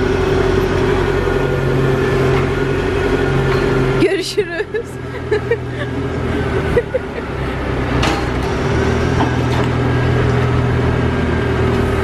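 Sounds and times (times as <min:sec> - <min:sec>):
tow truck engine humming: 0:00.0 - 0:12.0
traffic noise: 0:00.0 - 0:12.0.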